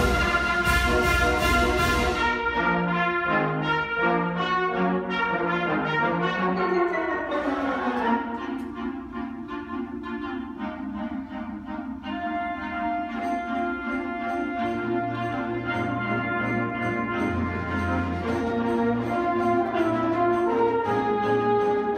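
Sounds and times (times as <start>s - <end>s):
concert band playing: 0.0s - 4.8s, 5.4s - 21.9s.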